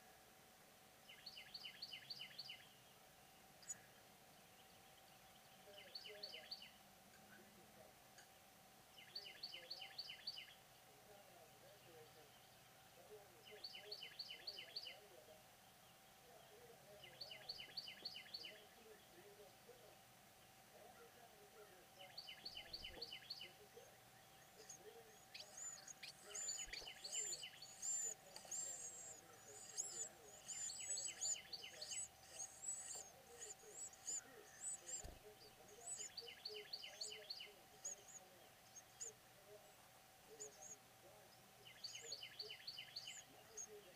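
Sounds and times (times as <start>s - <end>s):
bird chirping: 1.0s - 7.4s, 8.2s - 43.9s.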